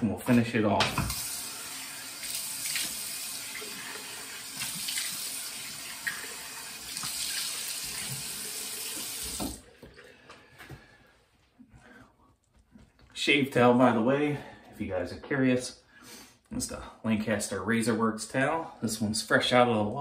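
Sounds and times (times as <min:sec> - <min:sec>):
water splashing on face: 0:02.1 - 0:09.6
tap running into sink: 0:06.9 - 0:09.6.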